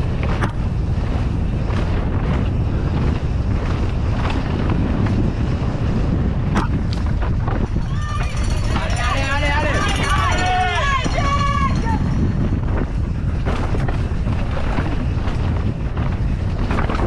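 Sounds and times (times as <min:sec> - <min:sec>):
bike tyres rattling over rocks: 0:00.0 - 0:17.0
wind on microphone: 0:00.0 - 0:17.0
spectators shouting and cheering: 0:07.8 - 0:12.1.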